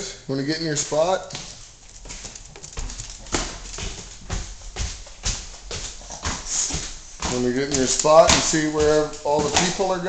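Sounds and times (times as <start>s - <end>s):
dog claws tapping on wooden stairs: 1.3s - 10.0s
heavy footsteps on stairs: 1.3s - 10.0s.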